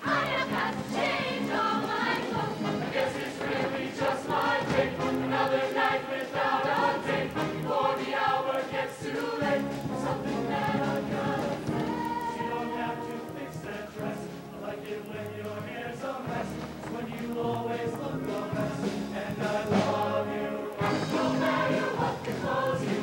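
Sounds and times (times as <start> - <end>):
band accompaniment: 0.0 - 14.8, 15.4 - 23.0
choir singing in harmony: 0.0 - 23.0
light percussion ticks: 0.0 - 23.0.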